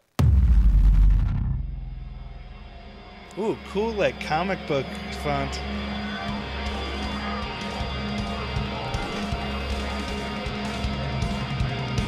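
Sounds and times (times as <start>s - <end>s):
deep bass hit: 0.0s - 3.3s.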